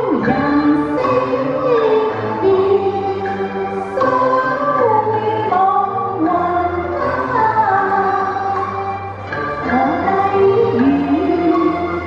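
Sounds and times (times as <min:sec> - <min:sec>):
woman singing into a microphone: 0:00.0 - 0:03.3, 0:04.0 - 0:08.6, 0:09.6 - 0:12.0
instrumental accompaniment: 0:00.0 - 0:12.0.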